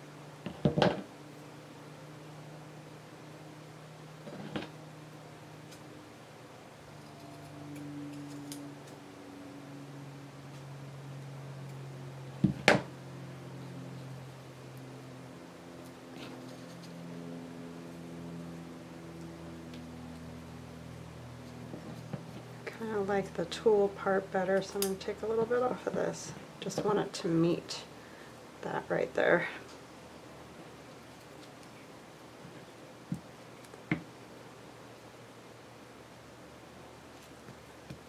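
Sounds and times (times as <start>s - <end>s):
faint low hum: 0.0s - 38.0s.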